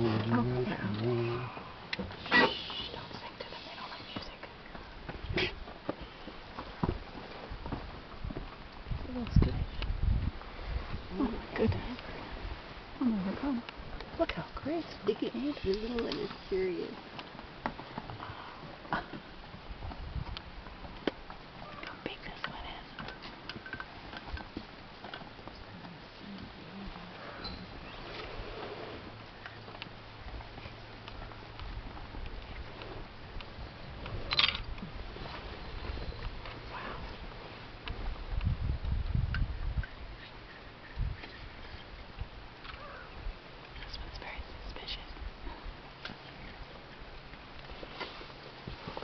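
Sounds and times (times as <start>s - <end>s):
whispered voices: 2.4s - 4.5s
whispering voices: 2.4s - 4.5s, 21.9s - 23.0s, 43.8s - 45.1s.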